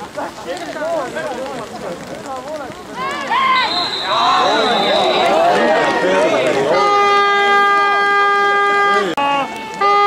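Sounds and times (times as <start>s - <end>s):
people shouting and cheering: 0.0s - 10.0s
horn long steady note: 6.6s - 9.2s.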